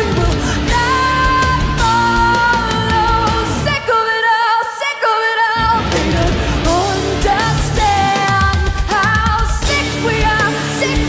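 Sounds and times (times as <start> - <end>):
distorted electric guitars: 0.0 - 3.9, 5.6 - 11.0
bass: 0.0 - 4.1, 5.6 - 11.0
drums: 0.0 - 11.0.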